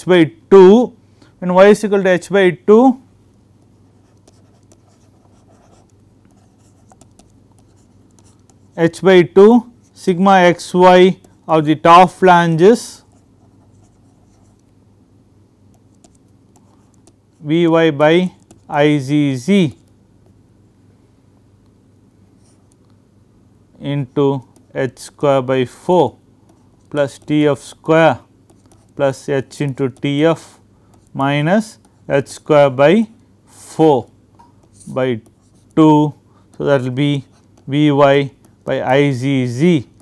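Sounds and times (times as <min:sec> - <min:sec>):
low steady hum: 0:00.0 - 0:40.0
stylus scratching on tablet screen: 0:03.7 - 0:09.0, 0:12.9 - 0:14.7, 0:15.7 - 0:17.5, 0:18.2 - 0:18.8, 0:26.5 - 0:32.0, 0:33.9 - 0:40.0.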